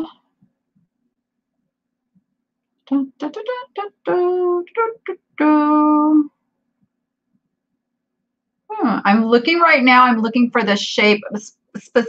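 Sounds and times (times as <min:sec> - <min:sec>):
woman speaking: 0:00.0 - 0:00.2, 0:02.9 - 0:06.3, 0:08.7 - 0:12.0.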